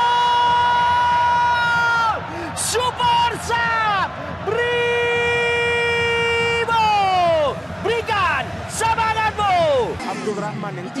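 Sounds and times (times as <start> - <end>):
commentator shouting: 0.0 - 11.0
stadium crowd: 0.0 - 11.0.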